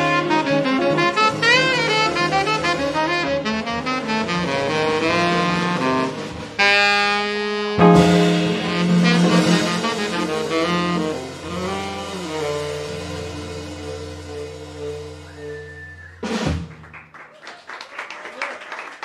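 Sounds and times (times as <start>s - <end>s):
jazz quartet final chord: 0.0s - 15.3s
drum and cymbal hit: 7.8s - 15.2s
audience clapping: 16.5s - 19.0s.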